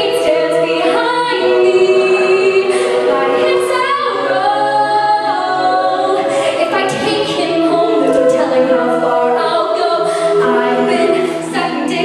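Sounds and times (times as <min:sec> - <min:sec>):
female lead voice singing: 0:00.0 - 0:12.0
group backing vocals: 0:00.0 - 0:12.0.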